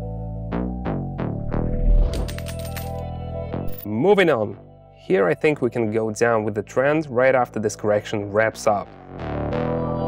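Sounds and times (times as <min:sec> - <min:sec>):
synth background music: 0:00.0 - 0:10.0
jingling coins: 0:02.1 - 0:03.0.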